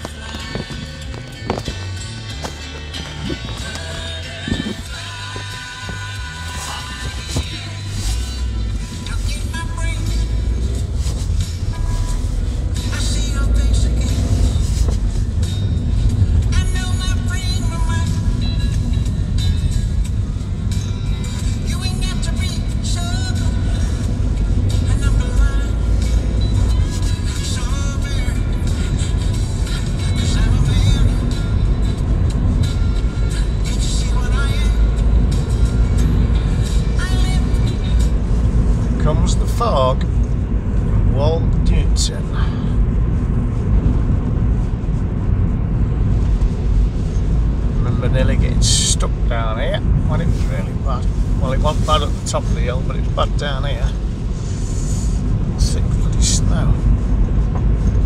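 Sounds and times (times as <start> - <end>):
music with vocals: 0.0 - 44.0
car engine and tyres rumbling: 0.0 - 58.0.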